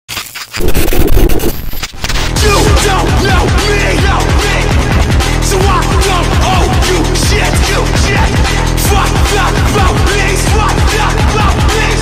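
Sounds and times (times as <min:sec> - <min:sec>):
harsh distorted static noise: 0:00.1 - 0:02.4.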